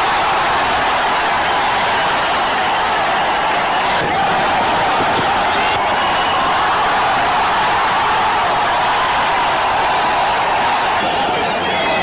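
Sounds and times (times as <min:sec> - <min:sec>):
stadium crowd din: 0:00.0 - 0:12.0.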